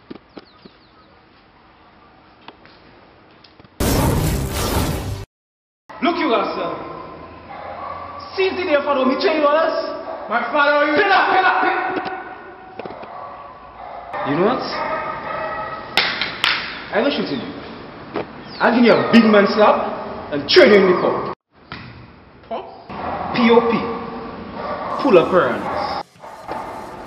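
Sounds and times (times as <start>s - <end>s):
loud boom sound effect: 3.8s - 5.3s
sharp hits: 3.8s - 5.3s.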